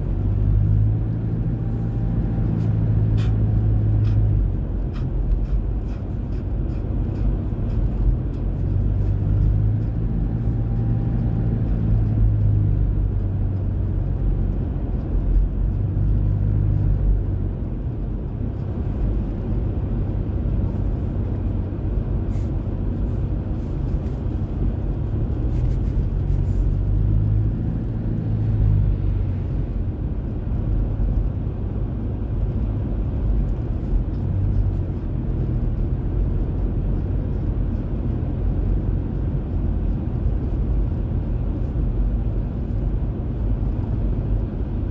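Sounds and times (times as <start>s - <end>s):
car engine and road noise: 0.0s - 44.9s.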